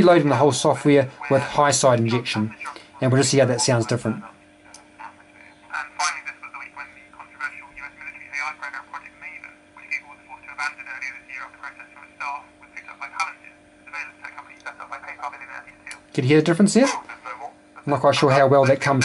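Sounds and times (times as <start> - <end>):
steady hum tone: 0.0 - 19.0
thin voice from radio loudspeaker: 5.0 - 16.0, 16.7 - 19.0.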